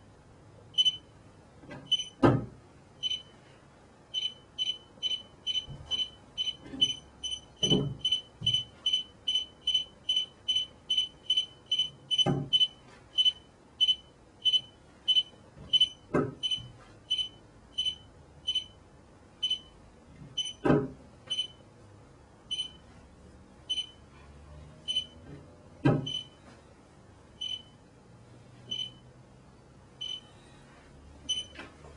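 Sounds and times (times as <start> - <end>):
high electronic beeps: 1.9 - 2.2, 27.4 - 27.7
phone knocking on wooden board: 7.6 - 8.6.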